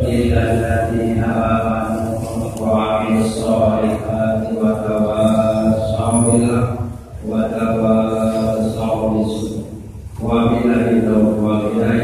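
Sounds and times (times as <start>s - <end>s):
man chanting long held notes: 0.0s - 12.0s.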